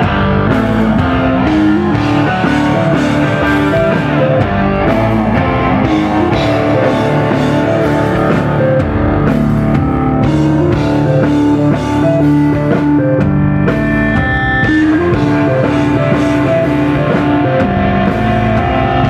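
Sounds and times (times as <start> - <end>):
drum kit: 0.0 - 19.0
electric guitar: 0.0 - 19.0.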